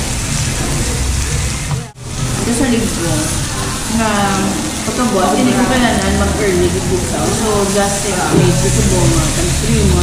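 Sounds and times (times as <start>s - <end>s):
meat sizzling on a grill: 0.0s - 10.0s
woman talking: 2.4s - 10.0s.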